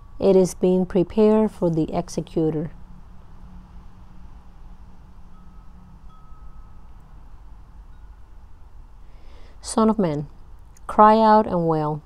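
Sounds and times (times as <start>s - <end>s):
wind chimes ringing: 2.7s - 9.3s.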